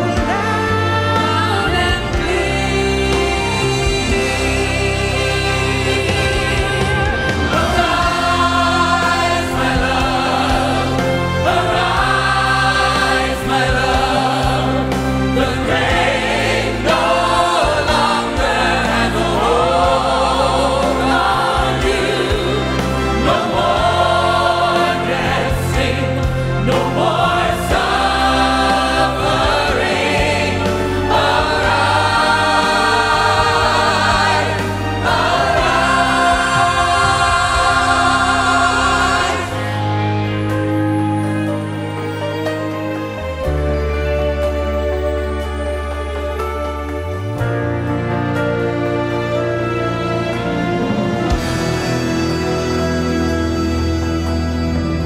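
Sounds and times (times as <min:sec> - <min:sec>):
choir singing gospel song: 0:00.0 - 0:55.0
instrumental accompaniment: 0:00.0 - 0:55.0.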